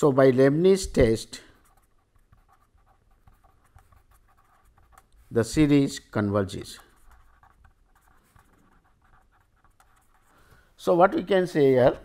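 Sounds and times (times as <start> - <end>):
pen scratching on paper: 1.0 - 5.7, 6.7 - 10.4.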